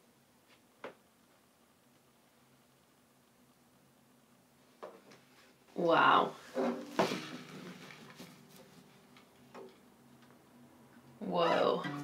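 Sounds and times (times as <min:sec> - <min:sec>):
guitar case handling noise: 0:06.5 - 0:09.8
faint guitar ringing: 0:06.6 - 0:09.8, 0:11.2 - 0:12.0.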